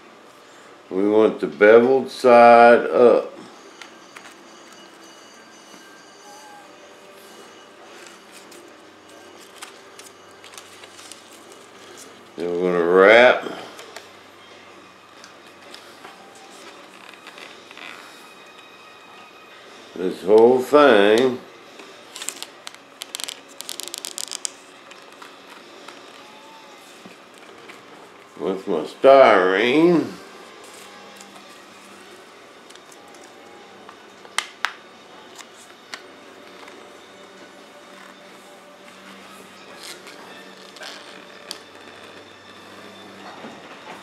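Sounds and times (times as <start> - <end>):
tape crackling as peeled: 7.9 - 12.4, 15.2 - 18.7, 21.1 - 28.3, 30.6 - 36.8, 39.0 - 42.6.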